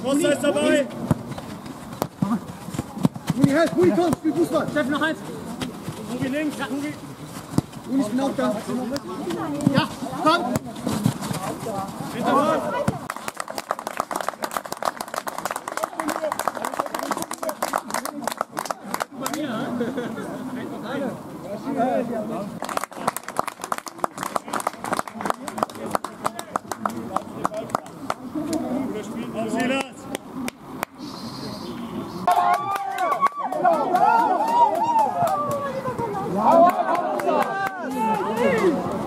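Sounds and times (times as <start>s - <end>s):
people clapping: 12.8s - 19.6s, 22.6s - 28.6s, 29.6s - 31.0s, 32.2s - 39.0s.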